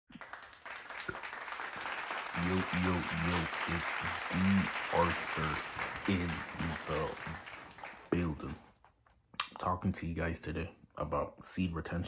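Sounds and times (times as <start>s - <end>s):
crowd clapping: 0.1s - 8.7s.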